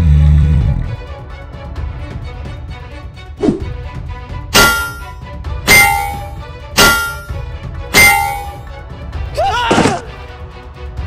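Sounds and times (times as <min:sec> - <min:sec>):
background music: 0:00.0 - 0:11.0
crowbar clanging on metal: 0:04.6 - 0:07.4, 0:08.0 - 0:08.6.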